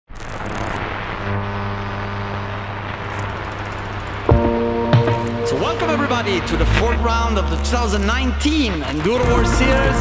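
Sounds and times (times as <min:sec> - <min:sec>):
humming tone: 0:00.5 - 0:10.0
steady low rumble: 0:02.6 - 0:10.0.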